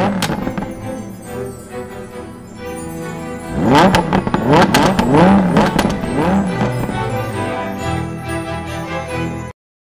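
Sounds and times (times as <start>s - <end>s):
sports car engine revving: 0.0s - 0.8s, 3.4s - 7.6s
music: 0.0s - 9.6s.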